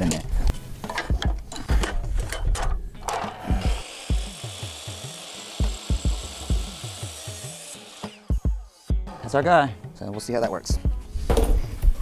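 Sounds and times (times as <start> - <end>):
background music with bass: 0.0 - 4.4, 5.6 - 7.0, 8.1 - 12.0
miter saw blade cutting: 3.3 - 8.9.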